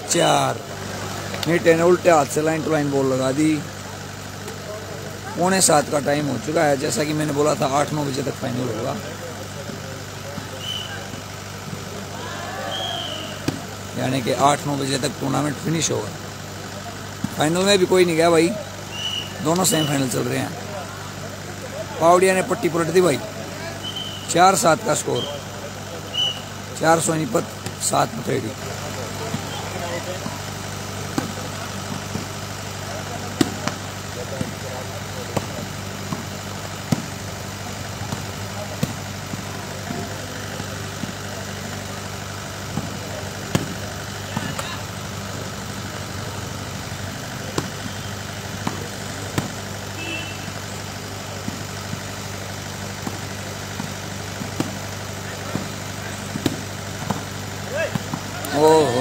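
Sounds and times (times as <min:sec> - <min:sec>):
low engine hum: 0:00.0 - 0:59.0
volleyball hits: 0:09.0 - 0:14.0, 0:27.3 - 0:59.0.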